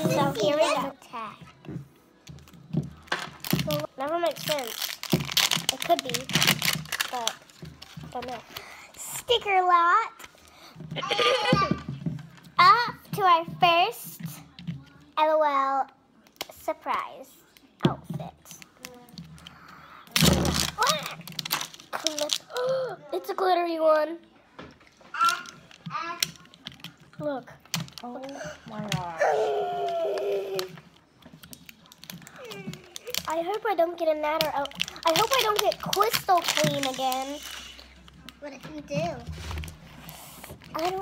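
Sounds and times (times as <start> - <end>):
fingertips crinkling plastic wrapping: 2.3 - 9.5, 18.5 - 22.8, 25.2 - 41.0.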